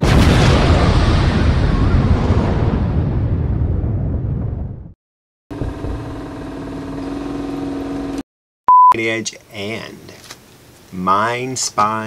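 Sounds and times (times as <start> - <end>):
noisy rumbling burst: 0.0 - 6.2
short loud pure beep: 8.7 - 9.0.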